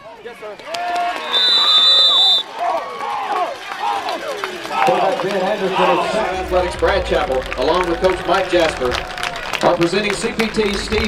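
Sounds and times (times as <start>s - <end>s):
people shouting and calling: 2.4s - 11.0s.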